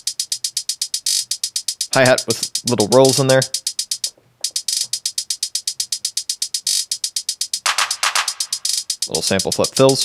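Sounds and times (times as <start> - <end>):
drum machine hi-hat ticks: 0.0 - 10.0
fuller drum hit: 7.7 - 8.4.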